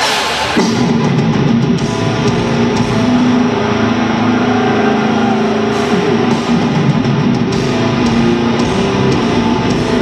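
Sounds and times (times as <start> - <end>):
death metal band playing live: 0.0 - 10.0
distorted electric guitars: 0.0 - 10.0.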